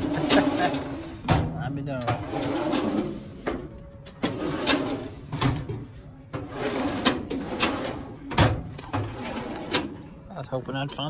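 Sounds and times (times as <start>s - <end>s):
metal drawers sliding and clacking: 0.0s - 10.1s.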